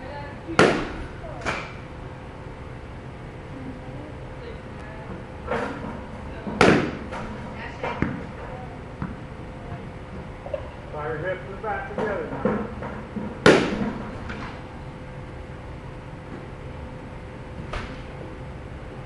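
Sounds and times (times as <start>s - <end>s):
bat cracking against ball: 0.6s - 1.8s, 6.6s - 7.3s, 13.2s - 14.0s.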